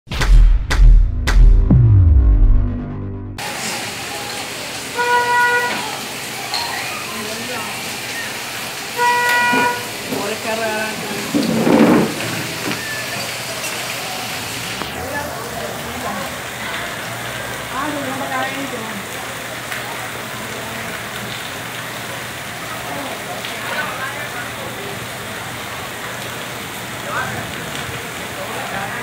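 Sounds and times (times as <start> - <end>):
street noise: 0.1 - 29.0
news intro sting: 0.2 - 3.4
steady rain: 3.4 - 29.0
vehicle horn: 5.0 - 5.9, 9.0 - 10.0.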